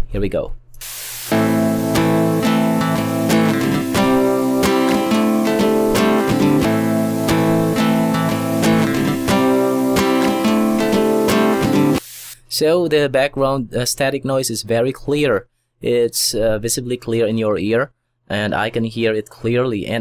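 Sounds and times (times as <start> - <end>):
static hiss: 0.8 - 12.4
guitar strumming chords: 1.3 - 12.0.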